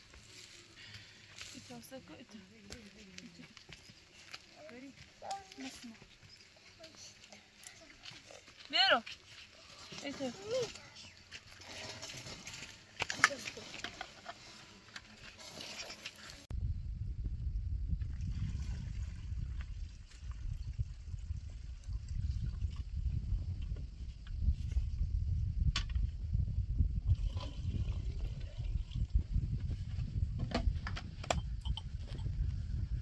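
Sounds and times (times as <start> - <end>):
wind buffeting microphone: 16.4 - 33.0.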